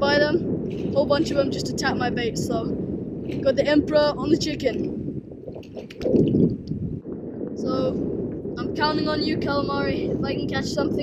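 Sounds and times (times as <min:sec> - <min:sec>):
wind buffeting microphone: 0:00.0 - 0:11.0
light water movement: 0:04.5 - 0:07.7.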